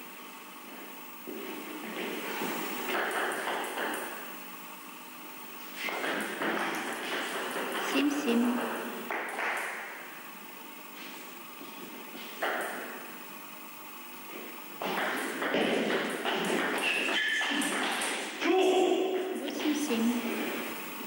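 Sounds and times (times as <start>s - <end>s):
table tennis ball struck and bouncing: 14.8s - 18.2s.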